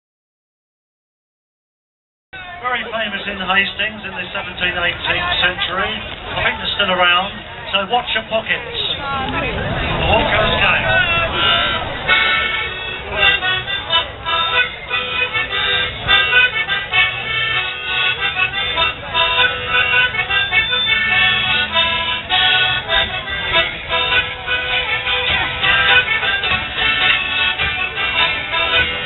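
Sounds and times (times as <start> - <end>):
crowd voices: 2.4 - 29.0
folk dance music: 2.4 - 29.0.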